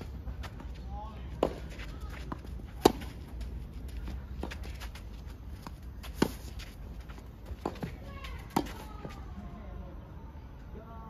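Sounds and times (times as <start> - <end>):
racket hitting tennis ball: 1.4 - 3.4, 5.6 - 6.8, 7.4 - 9.2.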